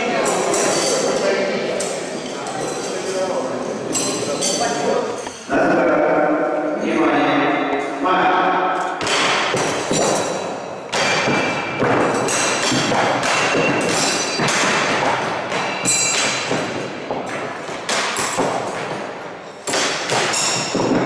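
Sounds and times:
knives striking wooden boards: 9.0 - 21.0.

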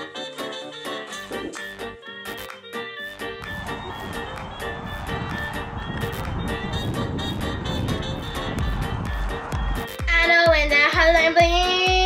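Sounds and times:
pop music with drum beat: 1.2 - 12.0
girl singing: 10.0 - 12.0.

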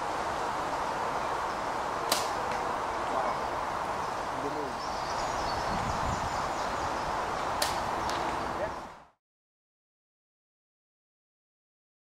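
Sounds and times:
bow string snapping: 2.1 - 2.6, 7.6 - 8.2.

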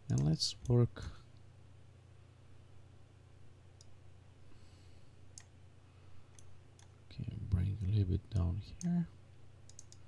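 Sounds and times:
low steady hum: 0.0 - 10.0
computer mouse clicks: 0.1 - 0.8, 3.8 - 4.0, 5.3 - 5.5, 6.3 - 6.9, 9.6 - 10.0
man speaking: 7.1 - 9.2.

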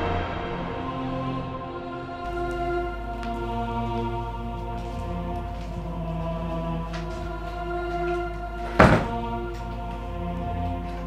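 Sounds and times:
background music: 0.0 - 11.0
door lock thunk: 8.8 - 9.2.

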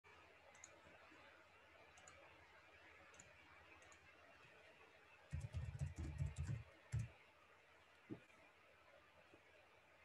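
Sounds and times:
faint room hiss: 0.1 - 10.0.

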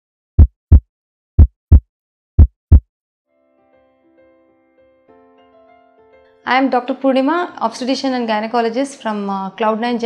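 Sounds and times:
heartbeat thumps: 0.4 - 0.8, 1.4 - 2.8.

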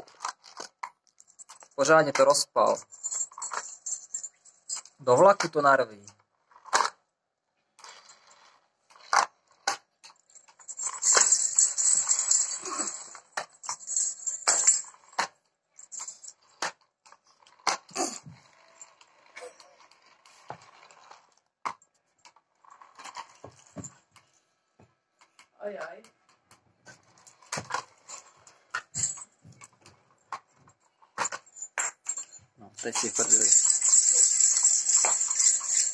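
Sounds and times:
toys clicking and knocking: 0.0 - 7.0, 25.2 - 35.9
toys rattling: 0.1 - 5.6, 10.0 - 16.7, 26.9 - 30.4, 31.2 - 35.9.

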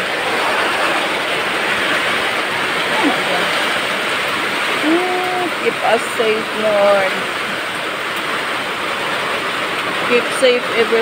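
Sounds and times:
heavy rain downpour: 0.0 - 11.0.

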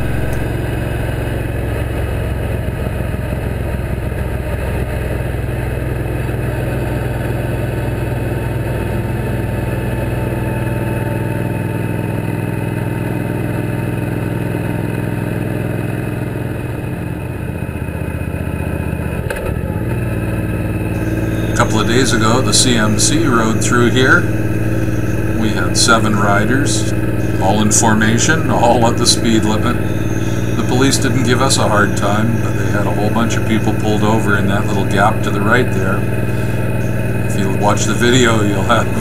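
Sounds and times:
motorcycle engine cruising: 0.0 - 39.0
road noise: 0.0 - 39.0.

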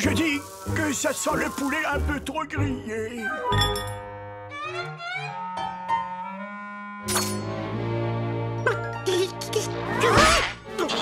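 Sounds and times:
orchestral strings score: 0.0 - 10.0.

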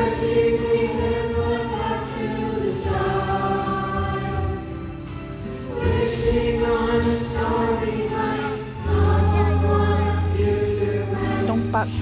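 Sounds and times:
children's chorus singing: 0.0 - 11.8.

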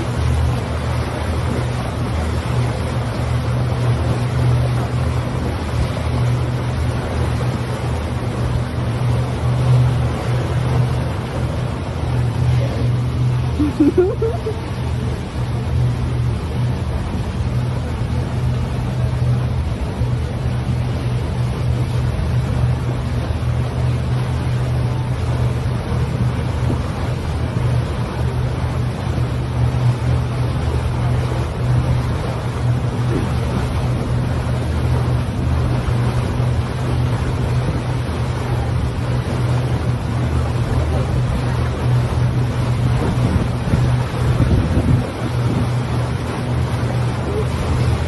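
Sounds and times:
boat engine humming: 0.0 - 48.0
water rushing past hull: 0.0 - 48.0
wind on microphone: 29.9 - 48.0.

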